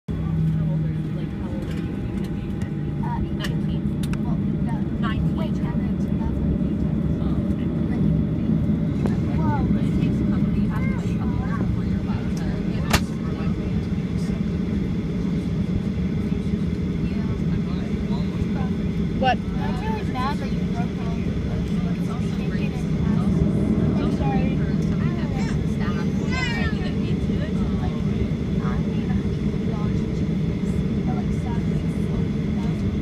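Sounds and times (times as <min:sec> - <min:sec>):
faint background voices: 0:00.1 - 0:33.0
jet engine low rumble: 0:00.1 - 0:33.0.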